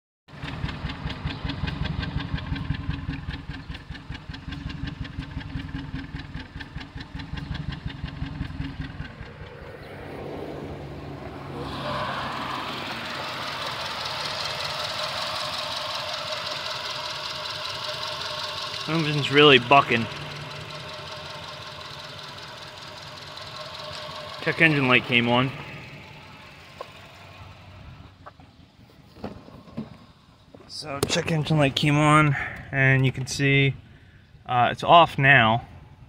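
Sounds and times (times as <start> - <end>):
car engine idling roughly: 0.3 - 9.9, 12.4 - 28.6.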